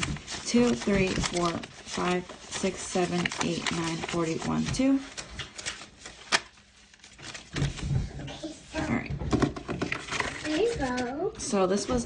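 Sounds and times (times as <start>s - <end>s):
paper bills rustling and flicking: 0.0s - 8.1s, 9.9s - 11.2s.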